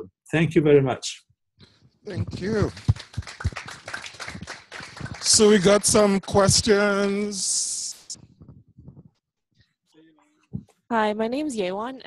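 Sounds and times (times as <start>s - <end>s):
audience applauding: 2.1s - 7.9s.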